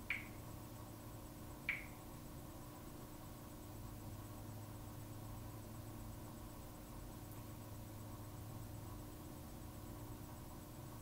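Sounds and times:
faint room hum: 0.0s - 11.0s
smartphone tap clicks: 0.1s - 0.3s, 1.7s - 2.0s.

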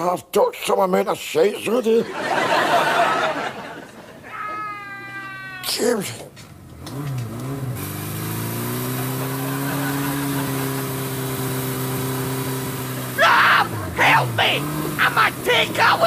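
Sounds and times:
road noise: 2.2s - 16.0s
man whimpering wail: 4.3s - 5.8s, 13.2s - 16.0s
motorcycle engine revving: 6.4s - 16.0s.

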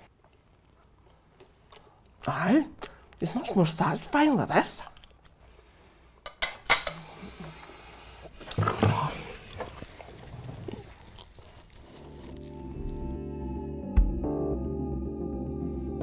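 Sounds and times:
cutlery clinking on plates: 6.3s - 7.1s
music: 12.0s - 16.0s.

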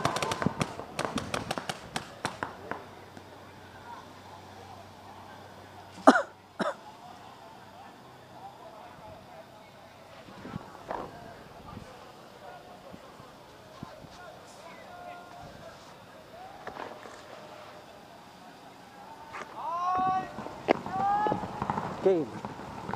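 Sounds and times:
people shouting long calls: 18.8s - 21.8s.

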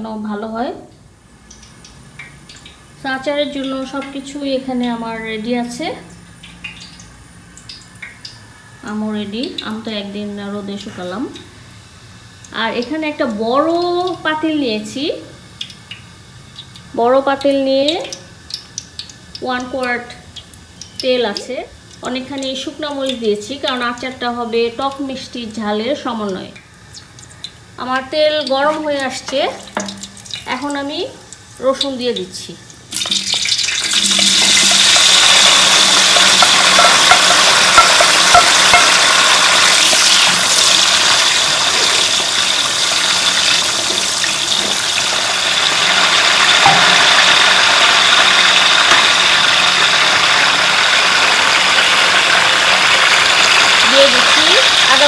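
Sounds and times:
woman speaking: 0.0s - 0.9s, 3.0s - 6.1s, 8.8s - 11.4s, 12.5s - 15.4s, 19.4s - 20.2s, 21.0s - 26.6s, 27.8s - 29.7s, 30.5s - 32.6s, 53.8s - 55.0s
garlic sizzling in hot oil: 0.0s - 55.0s
wooden spoon stirring: 33.9s - 40.6s.

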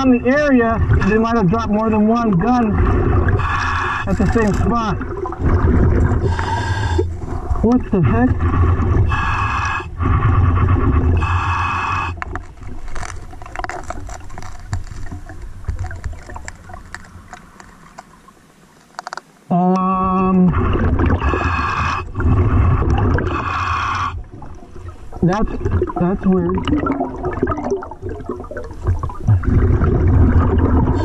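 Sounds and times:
bubbling and crackling: 0.0s - 31.0s
scuba regulator breathing: 2.8s - 4.4s, 6.1s - 7.6s, 8.4s - 12.4s, 20.7s - 24.3s.

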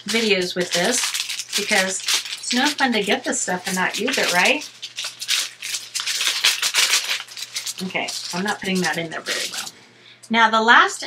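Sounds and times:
plastic packaging crinkling: 0.0s - 9.8s.

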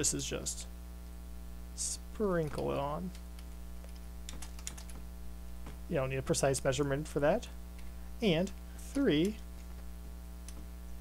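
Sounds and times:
steady electrical hum: 0.0s - 11.0s
computer keyboard typing: 2.5s - 5.1s.

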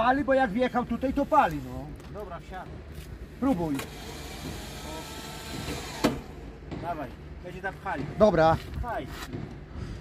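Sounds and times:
electric whirr: 3.7s - 6.5s.

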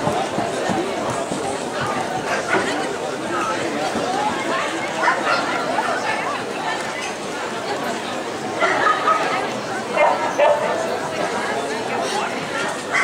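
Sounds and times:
crowd chatter: 0.0s - 13.0s
dogs barking and yipping: 10.0s - 10.8s.

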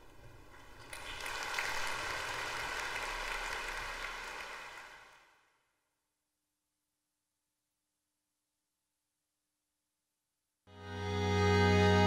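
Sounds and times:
audience applauding: 0.8s - 5.4s.

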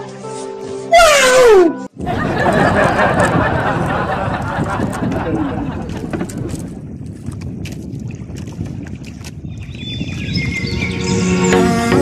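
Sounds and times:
sea rumble: 2.0s - 12.0s
wind on microphone: 2.0s - 12.0s.

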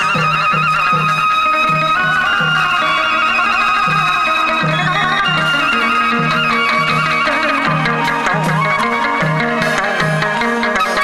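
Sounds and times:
reedy melody with trills: 0.0s - 11.0s.

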